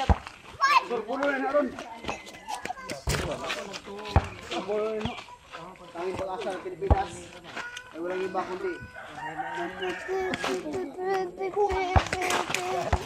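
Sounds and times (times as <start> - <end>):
people's voices: 0.0 - 13.0
roosters crowing: 8.6 - 10.9.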